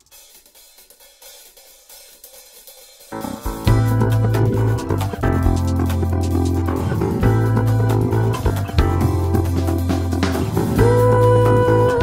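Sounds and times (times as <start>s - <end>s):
hi-hat and cymbal strokes: 0.0s - 12.0s.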